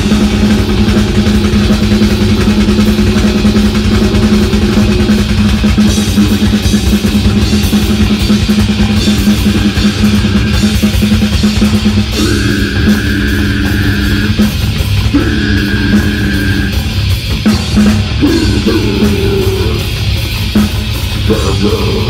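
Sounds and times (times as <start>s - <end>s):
drum kit with pounding bass drum: 0.0s - 22.0s
electric guitars: 0.0s - 22.0s
high held guitar note: 12.1s - 17.2s.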